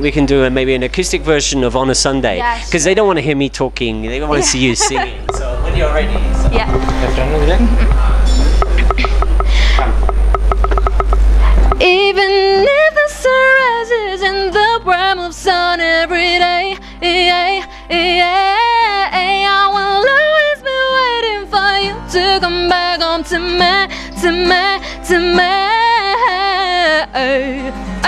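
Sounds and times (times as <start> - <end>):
woman singing: 4.3 - 5.2, 11.8 - 27.8
acoustic guitar: 4.3 - 28.0
loud rough noise: 4.6 - 11.9
light evenly spaced clicks: 7.8 - 11.8.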